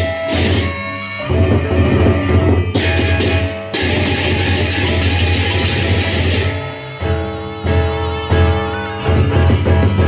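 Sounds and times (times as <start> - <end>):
big drums: 0.0 - 10.0
hand cymbals clashing: 2.8 - 6.6.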